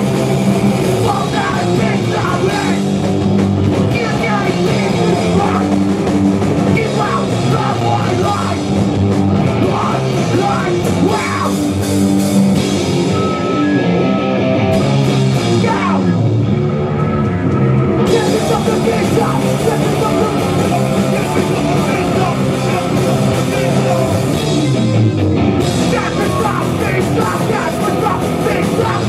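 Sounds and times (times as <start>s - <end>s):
bass guitar: 0.0s - 29.0s
drum kit: 0.0s - 29.0s
electric guitars: 0.0s - 29.0s
person singing: 0.9s - 2.9s, 3.9s - 5.8s, 6.7s - 8.8s, 9.6s - 11.8s, 18.0s - 24.5s, 25.8s - 29.0s.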